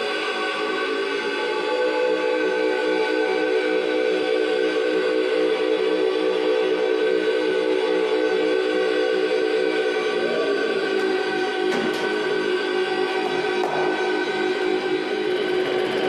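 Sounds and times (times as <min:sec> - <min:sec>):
drone music held chord: 0:00.0 - 0:16.0.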